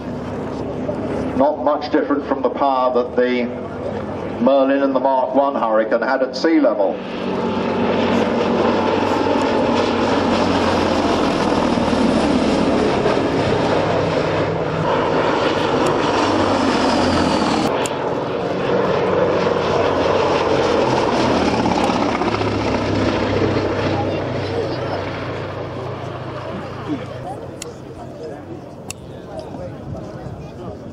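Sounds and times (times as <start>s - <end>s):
propeller plane engine droning: 0.0s - 30.9s.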